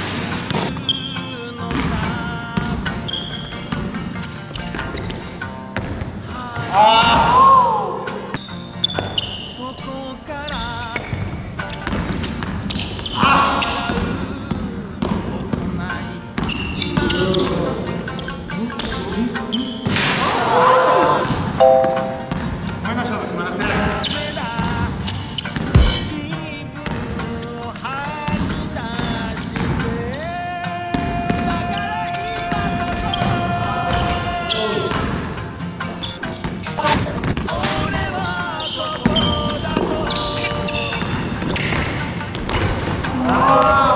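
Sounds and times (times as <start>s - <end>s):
background music: 0.0s - 43.9s
basketball bouncing on wooden floor: 25.6s - 26.2s.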